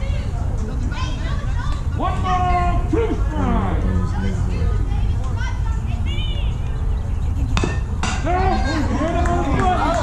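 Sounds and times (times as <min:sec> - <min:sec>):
voices shouting and cheering: 0:00.0 - 0:07.0, 0:08.1 - 0:10.0
steady low rumble: 0:00.0 - 0:08.0.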